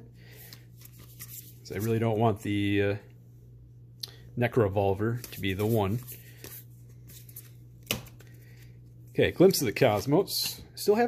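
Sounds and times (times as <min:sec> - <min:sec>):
trading cards rustling: 0:00.3 - 0:02.2, 0:05.1 - 0:08.8.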